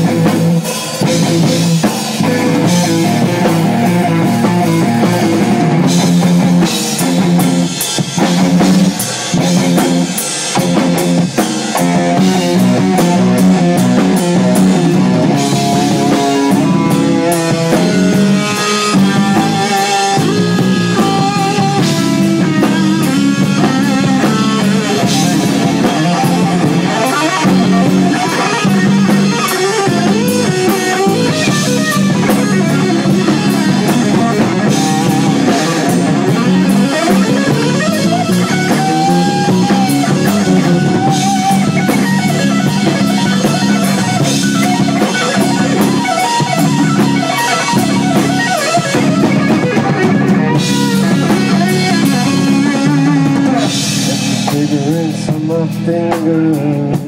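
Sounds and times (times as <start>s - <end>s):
drum kit: 0.0s - 57.0s
electric guitar: 0.0s - 57.0s
live rock band playing: 0.0s - 57.0s.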